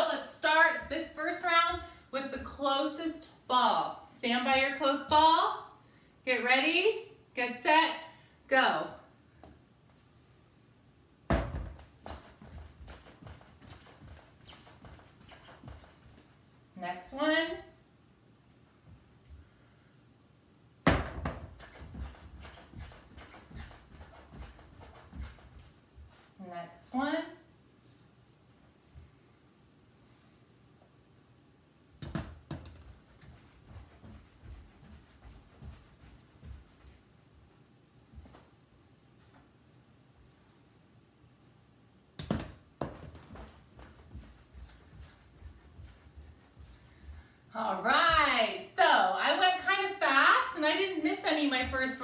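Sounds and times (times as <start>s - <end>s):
sneakers thudding on floor: 11.3s - 16.2s, 20.9s - 26.1s, 32.0s - 37.0s, 42.2s - 47.3s
ball knocking into plastic basket: 42.2s - 43.5s.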